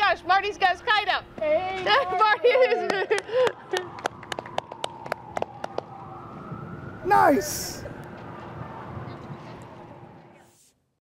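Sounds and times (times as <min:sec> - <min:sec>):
siren rising in pitch: 0:03.6 - 0:10.4.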